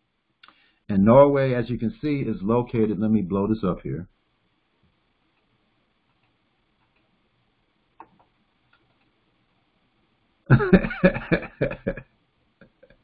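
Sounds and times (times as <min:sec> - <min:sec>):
man laughing loudly: 0:10.5 - 0:12.0.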